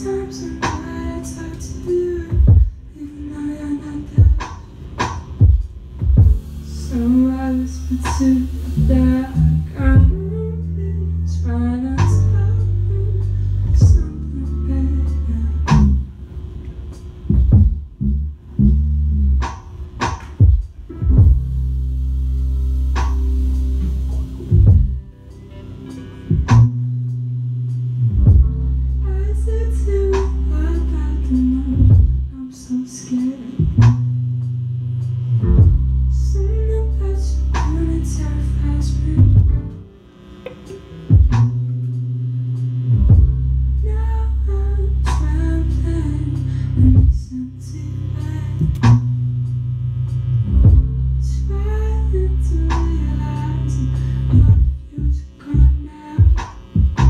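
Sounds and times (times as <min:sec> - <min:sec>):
electric bass line: 0:00.0 - 0:57.0.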